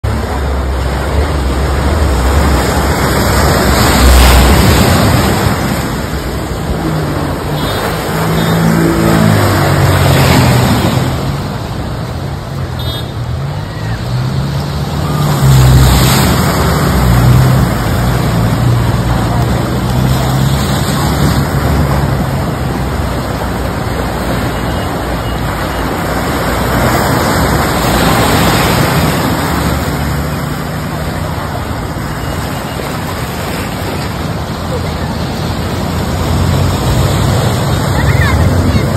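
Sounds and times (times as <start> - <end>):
flowing churning water: 0.0 - 38.9
vehicle engines labouring: 0.0 - 38.9.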